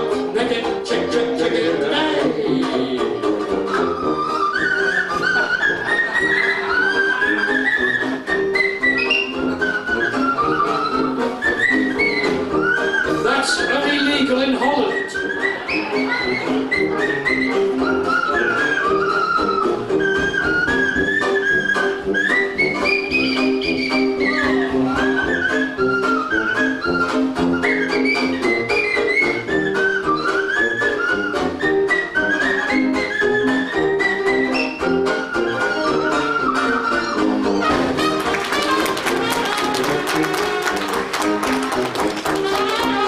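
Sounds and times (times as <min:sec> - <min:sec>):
rubber chicken squeaking: 0:03.7 - 0:13.8.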